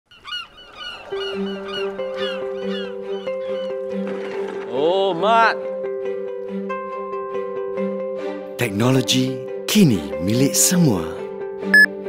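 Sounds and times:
seagulls squawking: 0:00.1 - 0:04.5.

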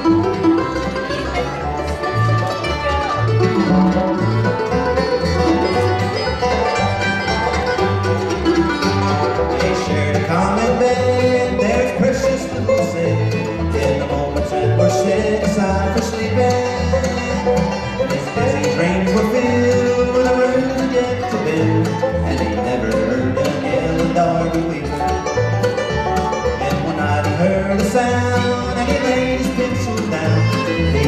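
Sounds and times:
bluegrass band playing: 0:00.0 - 0:31.0.

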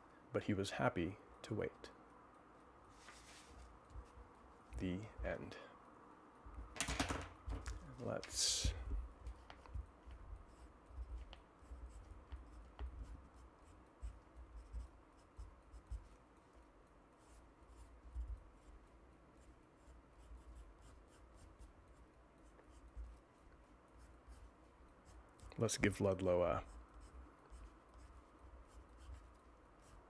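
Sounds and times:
pen scratching on paper: 0:09.3 - 0:16.2, 0:17.2 - 0:26.0, 0:26.6 - 0:30.0.

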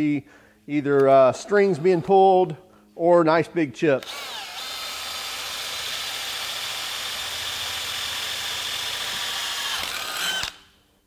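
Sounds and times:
drill whining through metal: 0:04.0 - 0:10.8.

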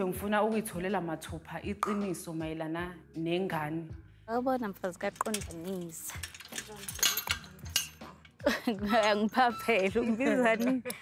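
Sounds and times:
metal gate latch and chain clinking: 0:05.0 - 0:10.8.

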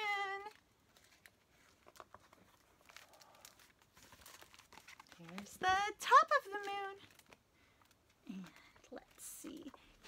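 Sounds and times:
paper page rustling: 0:00.0 - 0:10.0.

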